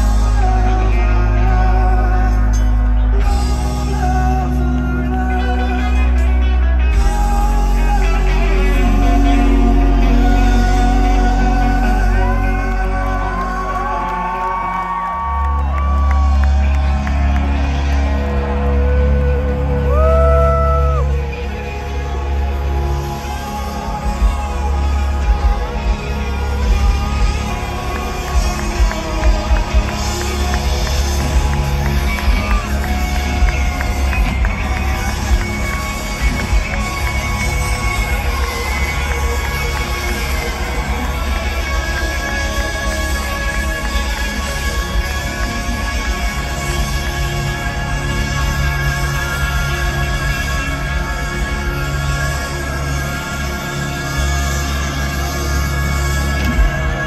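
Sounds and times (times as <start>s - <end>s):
live rock band through pa: 0.0s - 57.0s.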